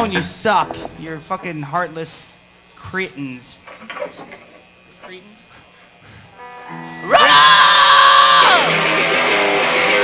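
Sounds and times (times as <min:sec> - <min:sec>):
punk band playing: 0:06.4 - 0:10.0.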